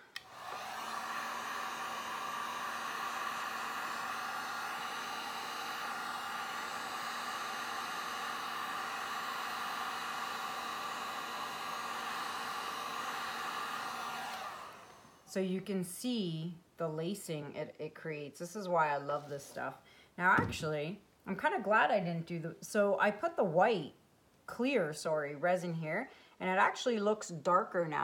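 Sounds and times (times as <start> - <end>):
heat gun blowing: 0.0 - 15.3.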